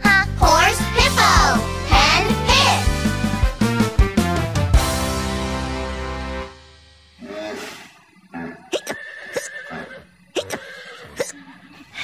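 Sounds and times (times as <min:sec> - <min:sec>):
light background music: 0:00.0 - 0:07.0
cartoon horse whinny: 0:07.2 - 0:11.5
cartoon hiccups: 0:08.4 - 0:09.6, 0:10.3 - 0:11.4.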